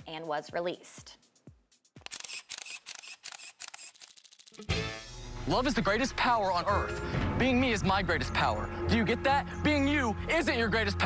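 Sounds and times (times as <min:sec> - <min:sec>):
camera shutter clicks: 0:02.0 - 0:04.5.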